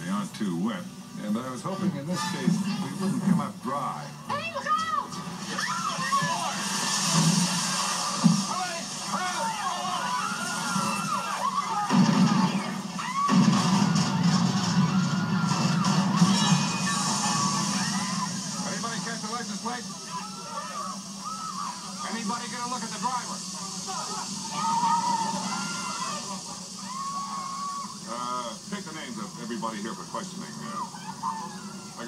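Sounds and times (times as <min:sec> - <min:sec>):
film soundtrack through tv speaker: 0:00.0 - 0:32.0.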